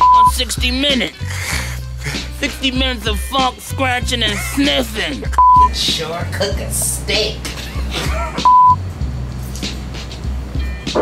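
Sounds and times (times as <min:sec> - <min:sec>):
loud single-pitch bleep: 0:00.0 - 0:00.3, 0:05.4 - 0:05.7, 0:08.5 - 0:08.8
hip-hop backing track: 0:00.0 - 0:11.0.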